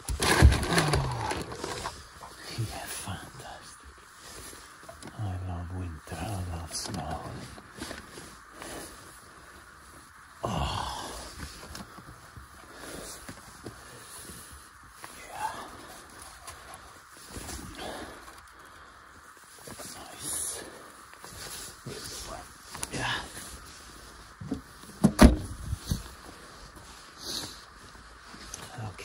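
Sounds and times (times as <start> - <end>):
bags rustling and knocking: 0.0 - 2.2
car door slamming: 25.0 - 25.5.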